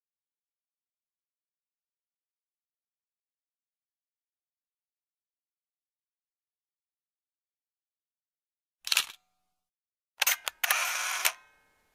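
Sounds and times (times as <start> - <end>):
camera shutter clicks: 8.9 - 9.2, 10.2 - 11.4
mechanical shutter burst: 8.9 - 9.2, 10.2 - 11.5.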